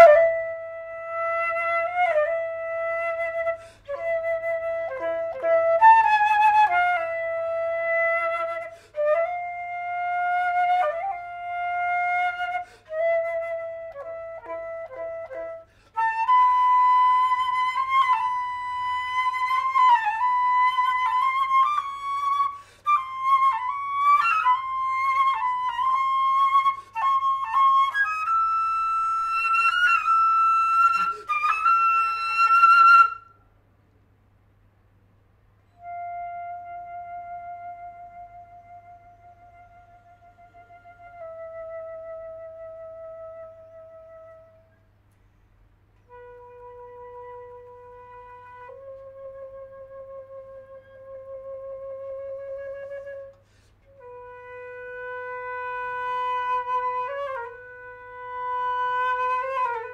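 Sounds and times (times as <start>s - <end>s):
solo flute playing: 0.0s - 33.5s, 35.6s - 45.0s, 46.0s - 59.9s.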